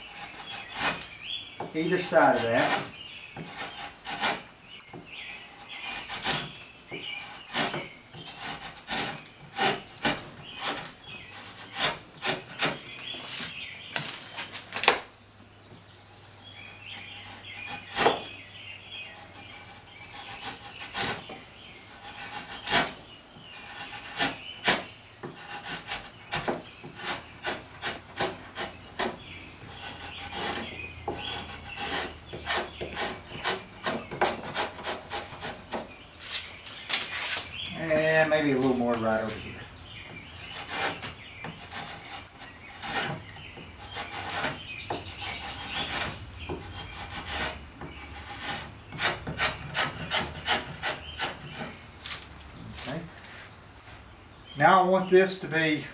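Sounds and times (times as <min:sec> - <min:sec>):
hand tool scraping wood: 0:00.0 - 0:15.0, 0:16.8 - 0:53.6.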